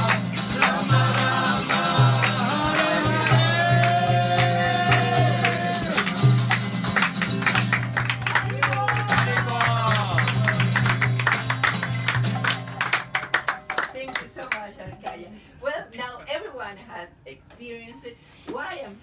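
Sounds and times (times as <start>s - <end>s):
voices singing: 0.0s - 6.4s
acoustic guitar strumming: 0.0s - 13.8s
hand clapping: 0.0s - 15.1s.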